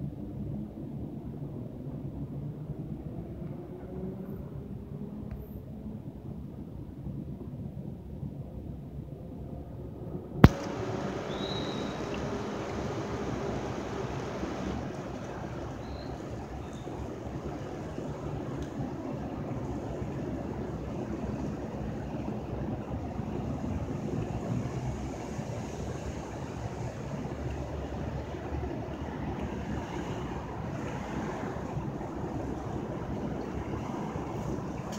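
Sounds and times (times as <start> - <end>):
city traffic rumble: 0.0 - 34.9.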